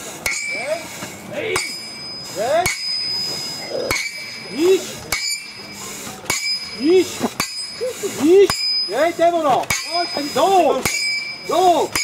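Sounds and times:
sledgehammer clanging on steel: 0:00.0 - 0:12.0.

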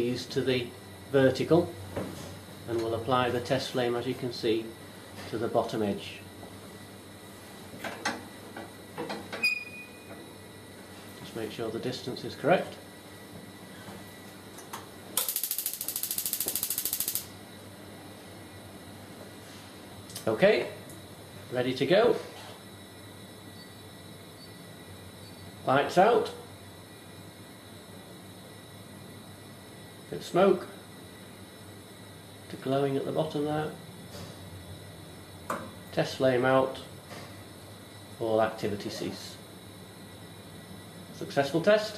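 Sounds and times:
rapid ratchet-like mechanical clicks: 0:15.2 - 0:17.3.

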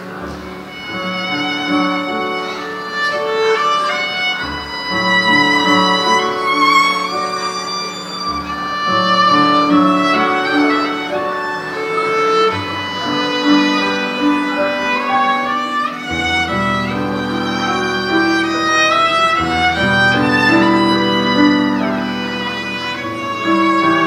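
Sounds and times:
bowed string melody: 0:00.0 - 0:24.0
digital piano accompaniment: 0:00.0 - 0:24.0.

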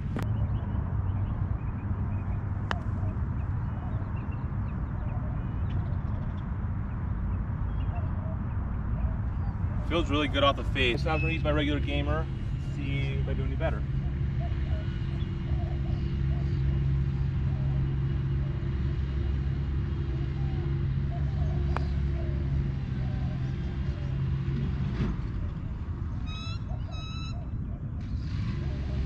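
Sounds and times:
bird chirping: 0:26.2 - 0:27.8.

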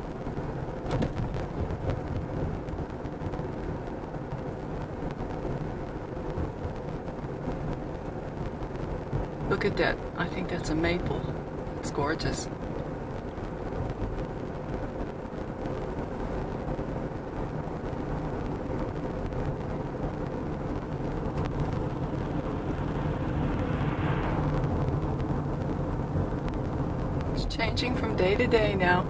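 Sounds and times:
car engine running: 0:00.0 - 0:29.0
tyres on paved road: 0:00.0 - 0:29.0.

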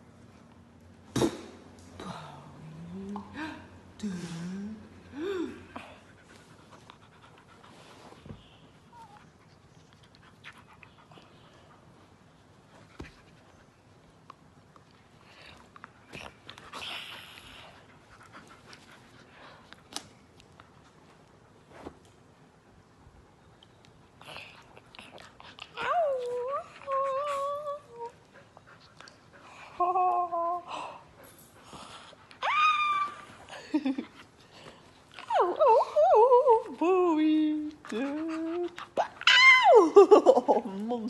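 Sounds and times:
dog whining and howling: 0:32.4 - 0:33.5, 0:38.0 - 0:40.0
dog panting: 0:37.6 - 0:39.2.

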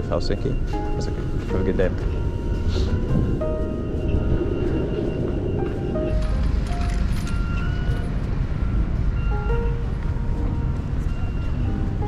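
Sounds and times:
city street noise: 0:00.0 - 0:12.0
soft music of held notes: 0:00.0 - 0:12.0
wind rumble: 0:00.0 - 0:12.0.

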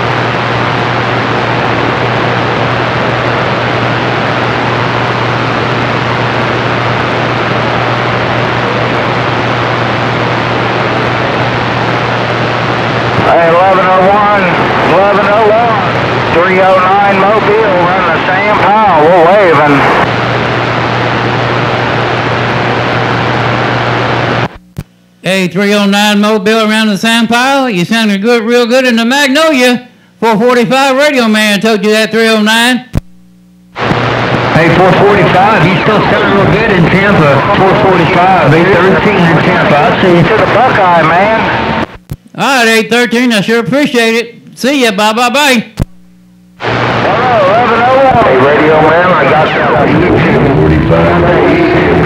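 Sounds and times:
low hum: 0:00.0 - 0:25.2, 0:32.9 - 0:42.3, 0:45.8 - 0:52.0
radio static hiss: 0:00.0 - 0:52.0
warbling voice over radio: 0:13.2 - 0:20.0, 0:34.5 - 0:41.6, 0:47.1 - 0:52.0.

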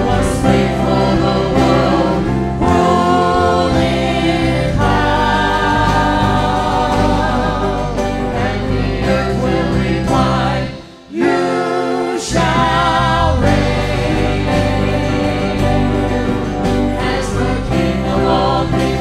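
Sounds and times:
acoustic guitar: 0:00.0 - 0:19.0
singers: 0:00.0 - 0:19.0.

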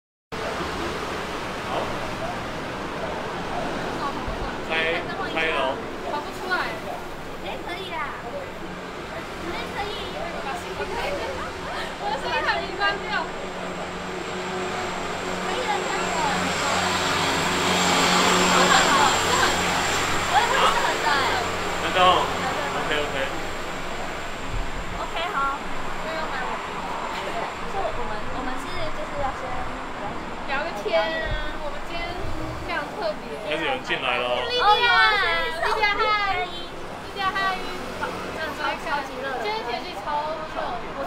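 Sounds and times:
street background hiss: 0:00.4 - 0:41.0
vehicle passing: 0:00.4 - 0:41.0.

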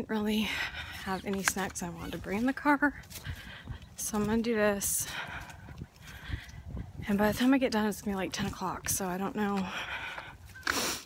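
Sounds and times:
soft footsteps: 0:00.8 - 0:10.8.

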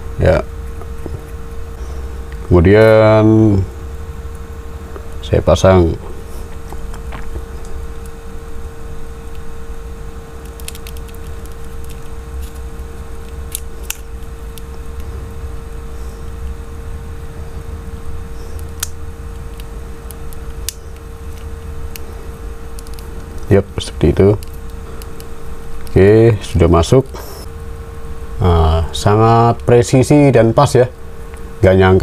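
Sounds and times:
steady background hum: 0:00.0 - 0:32.0.

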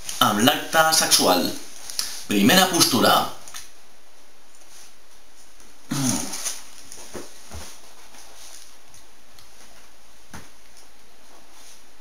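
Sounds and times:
man humming mmm: 0:05.9 - 0:06.4
mouth and throat sounds: 0:05.9 - 0:06.5.

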